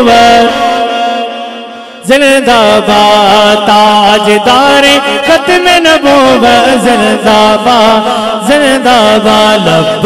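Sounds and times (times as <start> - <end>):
man chanting into a microphone: 0.0 - 10.0.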